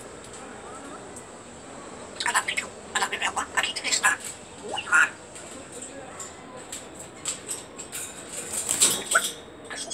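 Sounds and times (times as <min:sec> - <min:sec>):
parrot flapping against cage: 0:06.7 - 0:09.4.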